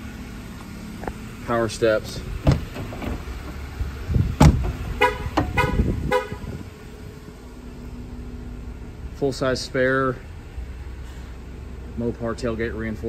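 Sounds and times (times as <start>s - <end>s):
running boards motor rumble: 0.0s - 12.2s
car door unlatching and opening: 2.4s - 5.9s
heavy thud: 2.4s - 6.0s.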